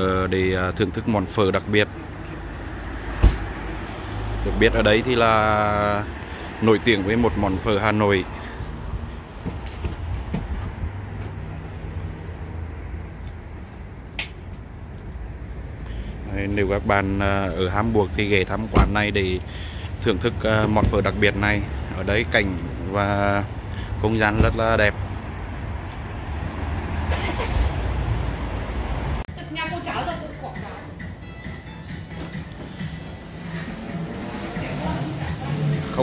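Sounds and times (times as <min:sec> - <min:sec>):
traffic engine rumble: 0:00.0 - 0:36.0.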